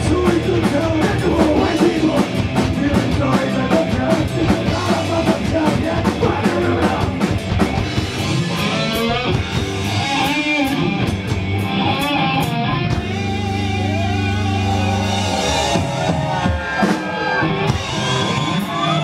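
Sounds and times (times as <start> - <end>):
punk rock band playing: 0.0 - 19.0.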